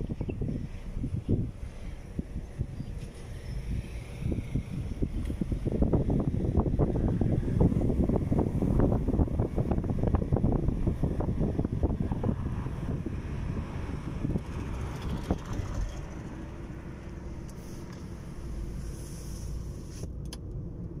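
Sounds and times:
wind buffeting microphone: 0:00.0 - 0:17.4
car road and engine rumble: 0:00.0 - 0:21.0.

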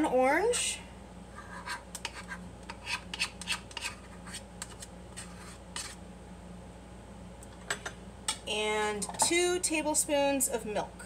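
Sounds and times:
faint steady hum: 0:00.0 - 0:11.0
scraping and clicking in a dish: 0:02.0 - 0:06.0.

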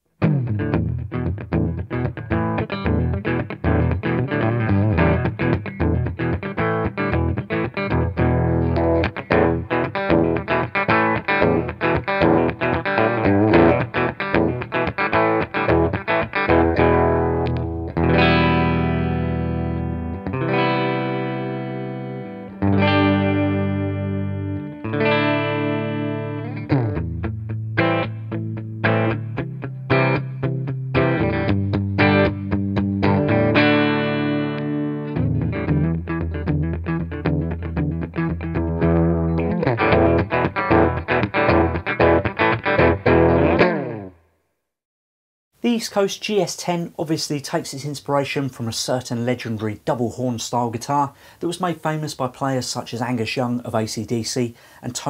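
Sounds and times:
electric guitar through amp: 0:00.2 - 0:44.2.

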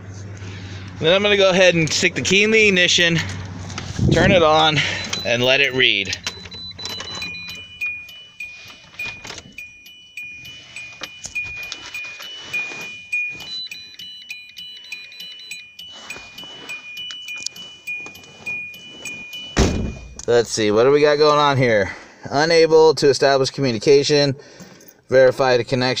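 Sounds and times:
electronic chime beeping: 0:04.2 - 0:20.3.

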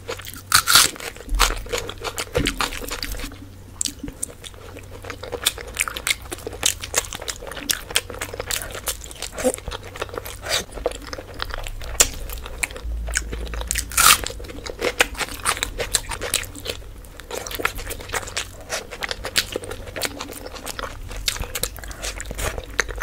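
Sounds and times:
wet chewing: 0:00.0 - 0:23.0.

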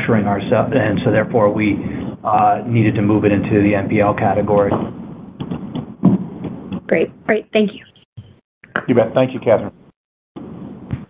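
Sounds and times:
man speaking: 0:00.0 - 0:04.8, 0:08.8 - 0:09.8.

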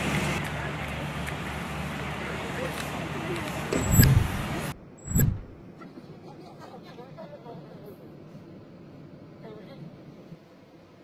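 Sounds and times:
street noise: 0:00.0 - 0:11.0
loud low thump: 0:05.0 - 0:05.6.

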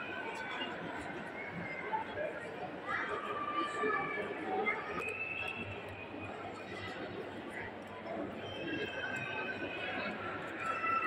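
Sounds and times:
busy public space noise: 0:00.0 - 0:11.0
people talking in background: 0:00.0 - 0:11.0.

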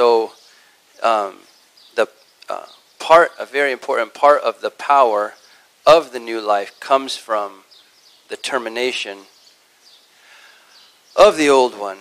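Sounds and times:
man speaking: 0:00.0 - 0:00.4, 0:01.0 - 0:01.4, 0:02.0 - 0:07.6, 0:08.3 - 0:09.3, 0:11.2 - 0:12.0
faint background ambience: 0:00.0 - 0:12.0.

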